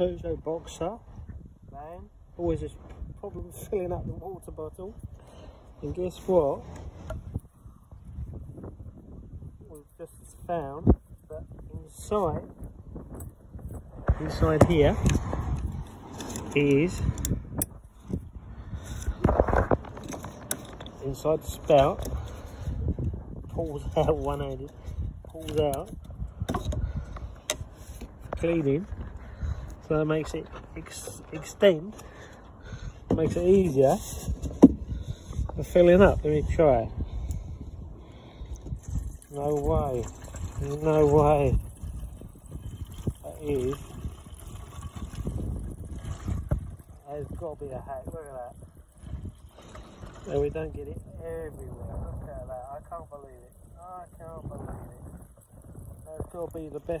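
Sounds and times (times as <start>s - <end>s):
wind rumbling on microphone: 0.0s - 57.0s
short scrapes and knocks: 24.8s - 28.4s, 33.1s - 35.6s
liquid pouring from plastic jug: 38.5s - 51.6s.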